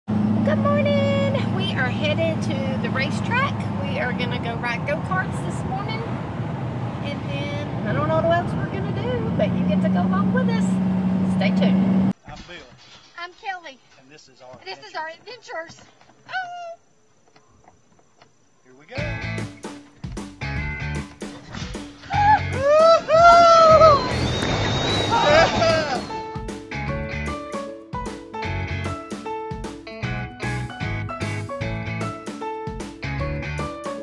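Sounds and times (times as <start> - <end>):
woman talking: 0.4 - 6.1, 7.0 - 11.9, 14.6 - 16.8
woman exclaiming: 16.3 - 16.8, 22.1 - 24.1, 25.1 - 26.1.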